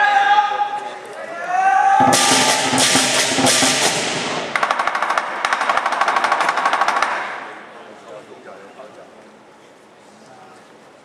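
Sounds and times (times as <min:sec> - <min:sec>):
cymbals crashing: 0:02.0 - 0:06.3
fast drum roll: 0:02.0 - 0:07.4.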